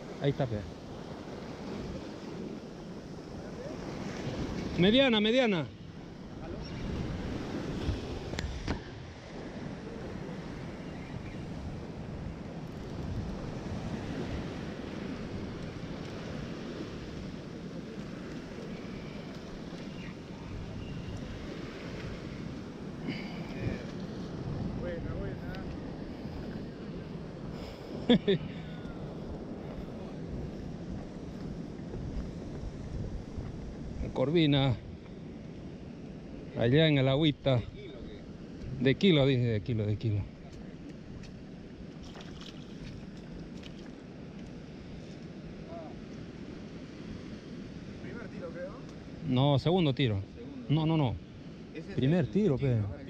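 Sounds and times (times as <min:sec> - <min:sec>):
surf washing over rocks: 0:00.0 - 0:53.0
wind buffeting microphone: 0:05.8 - 0:39.1.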